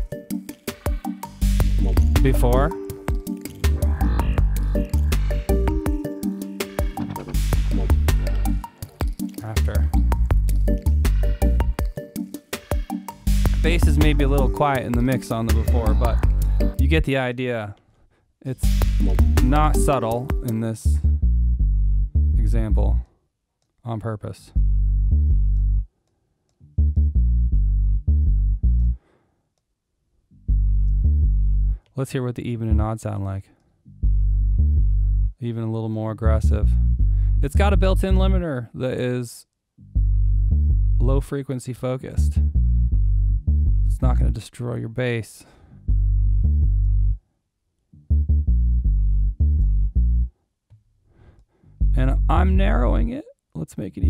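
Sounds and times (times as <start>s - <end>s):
synth bass notes: 1.1s - 11.8s, 12.9s - 17.1s, 18.6s - 20.1s, 24.6s - 25.9s, 26.8s - 29.0s, 42.2s - 44.4s, 45.8s - 47.2s, 48.1s - 50.3s, 51.8s - 53.1s.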